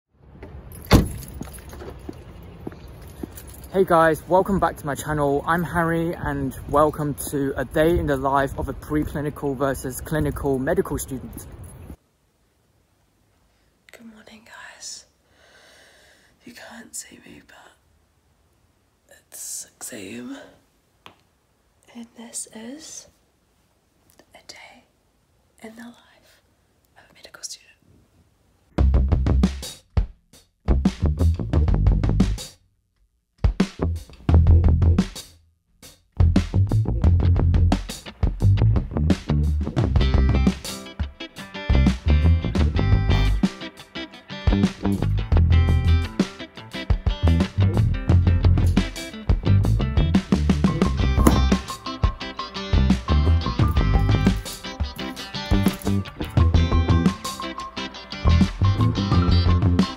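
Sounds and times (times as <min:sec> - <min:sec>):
car door shutting: 0:00.4 - 0:01.4
person whispering: 0:13.9 - 0:15.2, 0:16.4 - 0:17.8, 0:19.1 - 0:20.6, 0:21.8 - 0:23.2, 0:24.1 - 0:25.0, 0:25.6 - 0:27.8.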